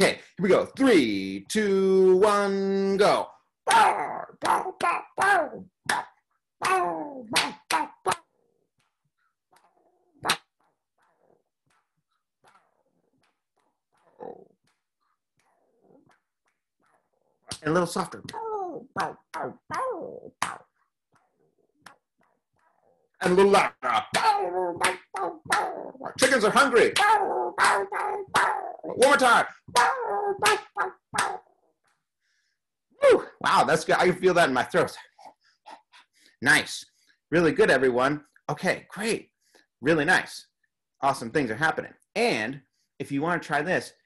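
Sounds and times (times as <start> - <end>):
sharp clap: 7.3 - 8.2, 24.8 - 25.2
mouth pops: 9.6 - 10.8, 12.5 - 20.8.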